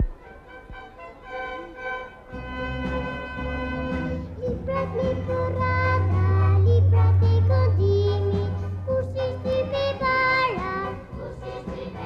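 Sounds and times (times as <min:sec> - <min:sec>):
orchestra with violins playing: 0:00.0 - 0:07.2.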